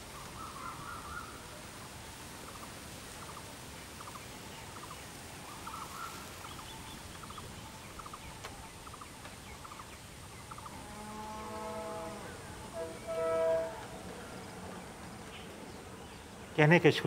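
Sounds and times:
steady background hiss: 0:00.0 - 0:17.0
bird calling: 0:04.0 - 0:17.0.

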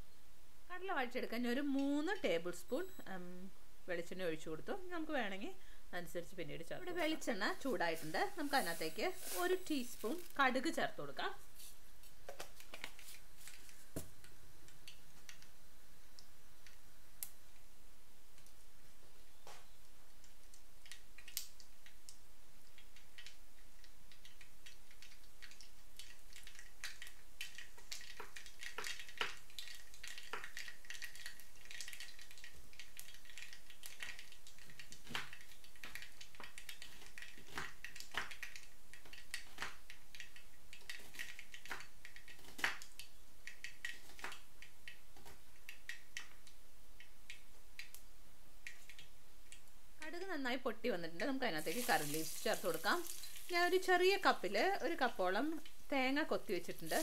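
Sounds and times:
seeds popping in hot oil: 0:06.8 - 0:10.9, 0:19.4 - 0:57.0
faint oil sizzle: 0:51.5 - 0:57.0.

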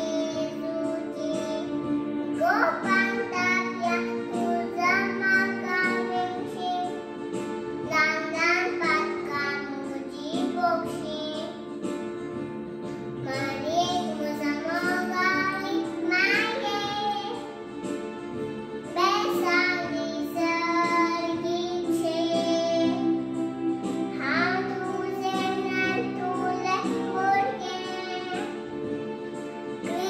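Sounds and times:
girl singing into microphone: 0:00.0 - 0:07.0, 0:07.8 - 0:11.7, 0:12.9 - 0:17.6, 0:18.9 - 0:23.2, 0:24.1 - 0:28.6
instrumental backing music: 0:00.0 - 0:30.0.

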